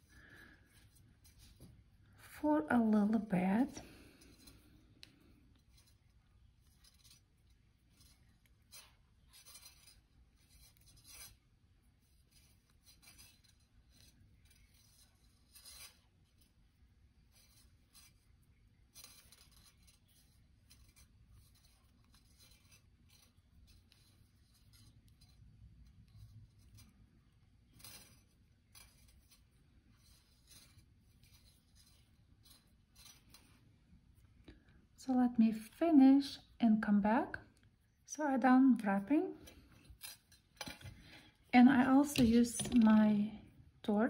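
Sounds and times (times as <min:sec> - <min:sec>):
scratchy rubbing of copper wire: 0:00.0 - 0:34.7, 0:39.0 - 0:43.0
low room hum: 0:00.0 - 0:44.0.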